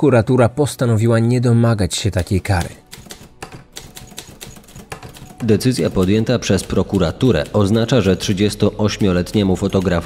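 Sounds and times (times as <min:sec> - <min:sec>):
person narrating: 0:00.0 - 0:02.9, 0:05.4 - 0:10.0
typewriter keys clicking: 0:02.2 - 0:10.0.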